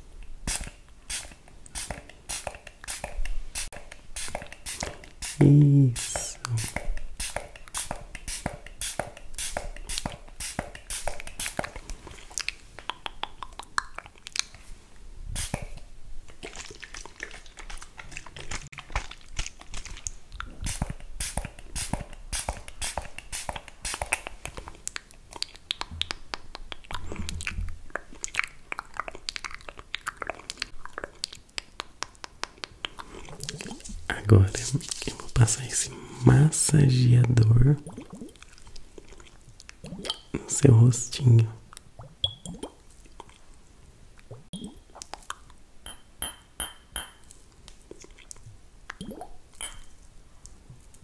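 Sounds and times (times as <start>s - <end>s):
spray bottle hissing: 0.5s - 11.6s, 15.4s - 15.7s, 20.7s - 24.2s.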